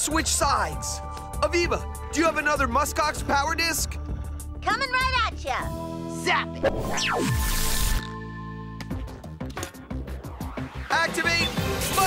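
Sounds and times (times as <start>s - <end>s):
cartoon zap: 6.6s - 8.0s.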